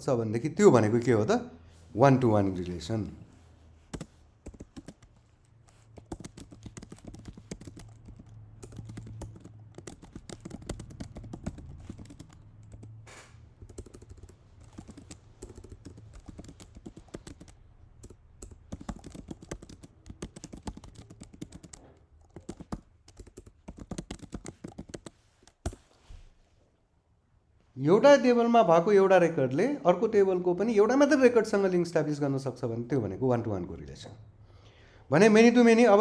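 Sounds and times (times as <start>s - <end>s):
typing on computer keyboard: 3.9s - 25.8s.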